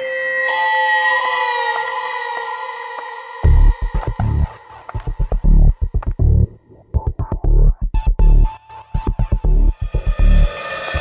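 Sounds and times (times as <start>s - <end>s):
sustained synthesizer tones: 0.8s - 11.0s.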